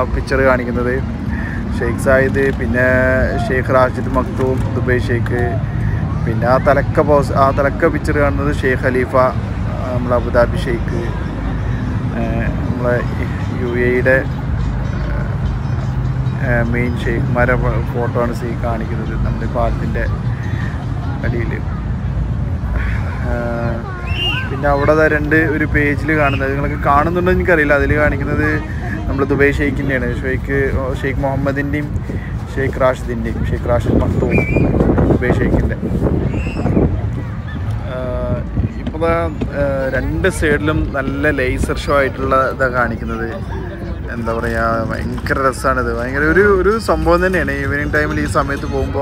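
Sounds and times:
wind on microphone: 0:31.8 - 0:40.9.

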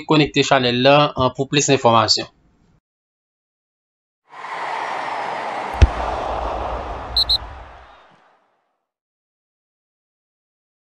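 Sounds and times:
rushing whoosh: 0:04.3 - 0:08.1
quick high blips: 0:07.2 - 0:07.5.

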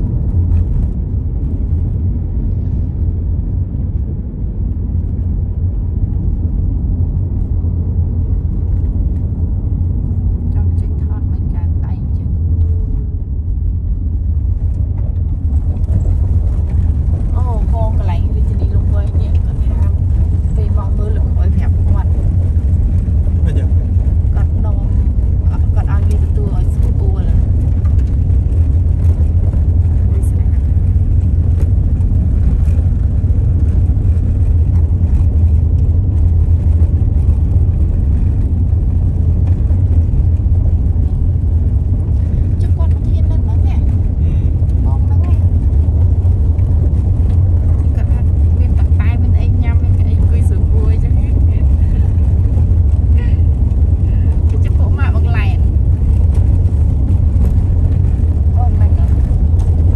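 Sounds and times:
vehicle driving on rough road: 0:00.0 - 0:59.9.

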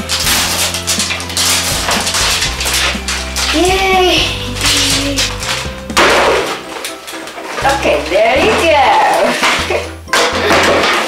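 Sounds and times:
wrapping strip tearing off plastic: 0:00.0 - 0:03.8
background music: 0:00.0 - 0:11.0.

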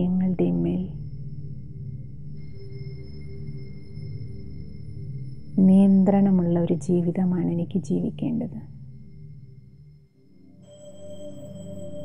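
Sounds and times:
low drone background music: 0:00.0 - 0:12.0.

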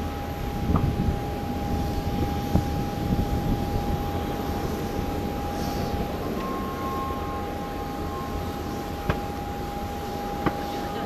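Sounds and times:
jet airliner engines rumbling: 0:00.0 - 0:11.0
thin steady tone: 0:00.0 - 0:11.0.

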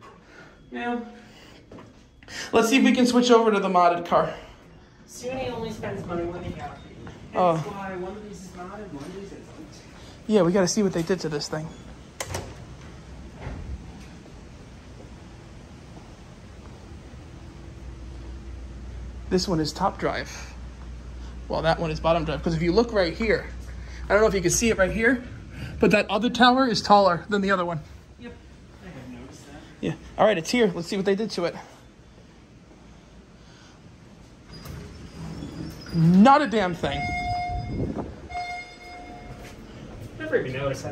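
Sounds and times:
elevator machinery humming: 0:00.0 - 0:40.9
elevator doors sliding open: 0:05.1 - 0:09.4, 0:10.8 - 0:15.4, 0:34.2 - 0:40.9
elevator door click: 0:12.1 - 0:14.2.

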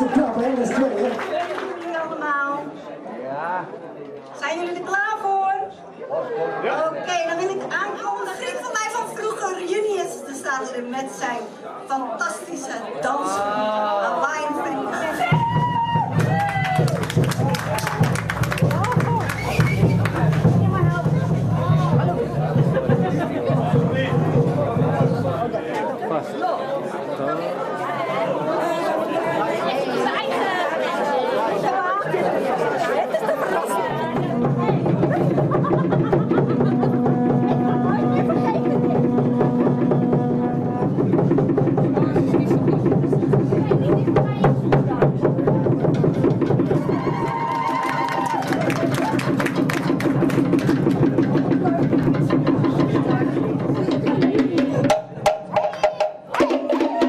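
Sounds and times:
people chattering: 0:00.0 - 0:57.0
wooden slit drums: 0:15.2 - 0:25.5, 0:34.0 - 0:57.0
bass drum: 0:15.2 - 0:25.6, 0:33.9 - 0:57.0.

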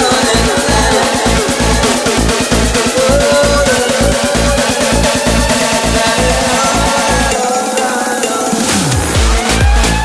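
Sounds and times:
gliding synth lines: 0:00.0 - 0:09.2
electronic dance music: 0:00.0 - 0:10.0.

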